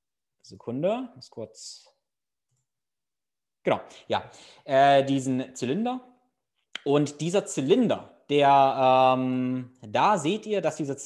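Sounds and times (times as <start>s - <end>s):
man talking: 0.4s - 2.0s, 3.6s - 6.2s, 6.8s - 11.0s.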